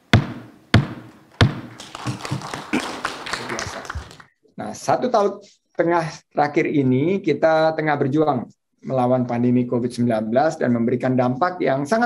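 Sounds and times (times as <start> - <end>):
wooden gavel striking table: 0.1 - 1.7.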